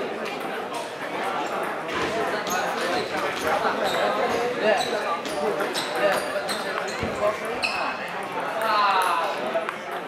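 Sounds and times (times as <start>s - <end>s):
chattering voices: 0.0s - 10.0s.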